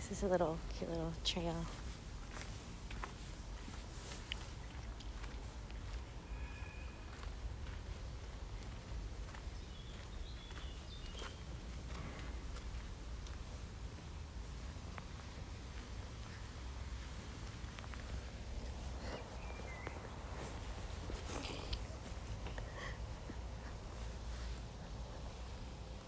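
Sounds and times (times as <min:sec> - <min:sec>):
footsteps on gravel path: 0:00.2 - 0:24.5
bird calls: 0:09.5 - 0:11.5, 0:19.0 - 0:20.5.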